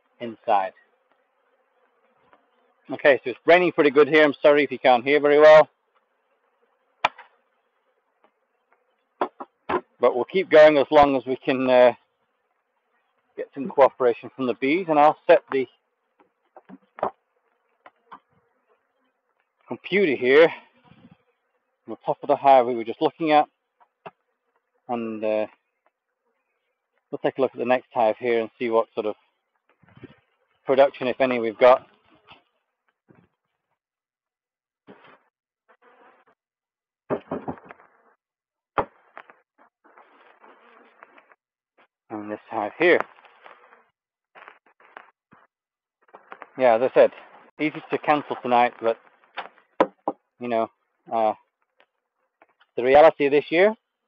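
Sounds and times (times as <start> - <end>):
honeybees buzzing: 0.0 - 33.8, 34.9 - 52.8.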